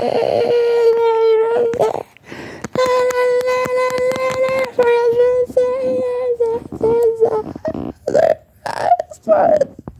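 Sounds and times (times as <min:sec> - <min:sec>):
rough vocal sounds: 0:01.7 - 0:09.3.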